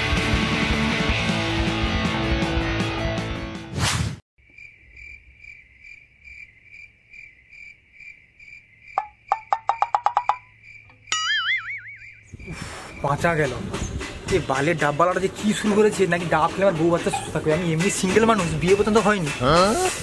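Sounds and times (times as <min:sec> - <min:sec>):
background music: 0:00.0 - 0:03.7, 0:13.3 - 0:20.0
pulsing high chirping tone: 0:09.0 - 0:12.6
wobbling warbling tone: 0:11.1 - 0:12.2.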